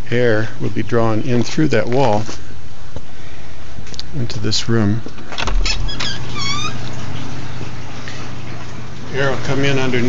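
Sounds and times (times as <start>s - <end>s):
low machine hum: 0.0s - 10.0s
high wavering squeak: 5.7s - 6.9s.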